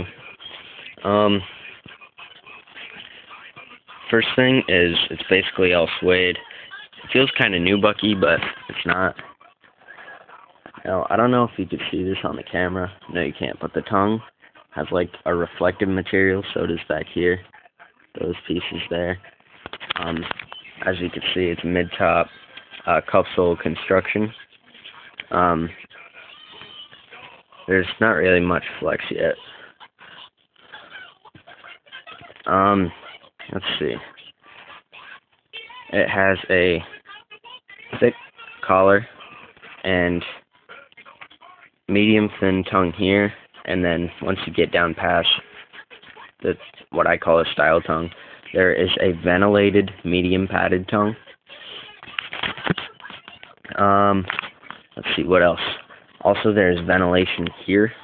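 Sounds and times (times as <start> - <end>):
rustling and handling noise: 18.3 - 29.3, 51.9 - 58.0.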